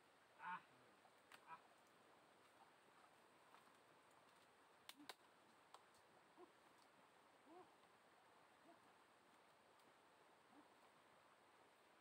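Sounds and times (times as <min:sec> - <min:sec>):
faint animal calls: 0:00.4 - 0:00.7, 0:01.4 - 0:01.7, 0:07.4 - 0:07.8, 0:10.4 - 0:10.9.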